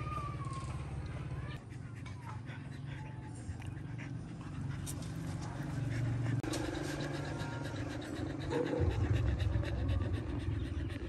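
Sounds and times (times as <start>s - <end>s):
dogs panting: 0.0s - 11.0s.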